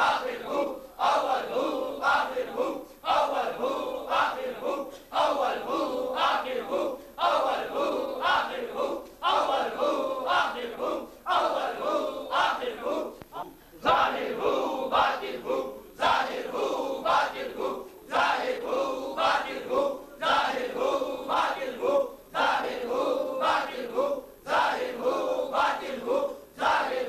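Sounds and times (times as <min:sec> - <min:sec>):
men chanting rhythmically: 0:00.0 - 0:13.2, 0:13.8 - 0:27.0.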